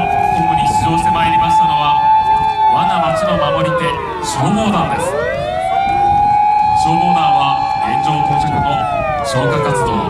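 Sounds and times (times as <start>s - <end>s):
fire engine siren wailing: 0.0s - 10.0s
other sirens: 0.0s - 10.0s.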